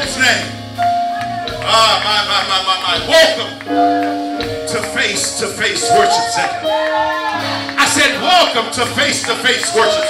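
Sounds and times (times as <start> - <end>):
man speaking into a microphone: 0.0 - 0.6, 1.5 - 3.6, 4.5 - 6.7, 7.8 - 10.0
worship band music on keyboard: 0.0 - 10.0.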